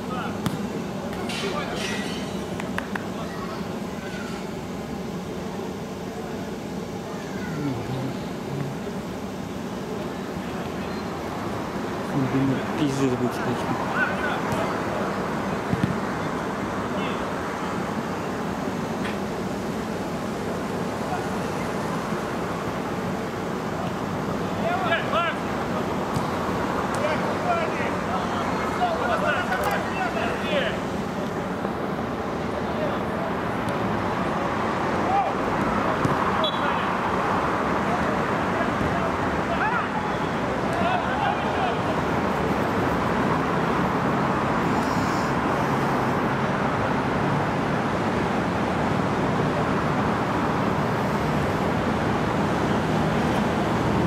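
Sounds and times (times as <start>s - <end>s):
background noise haze: 0.0s - 54.0s
players shouting: 38.0s - 42.2s.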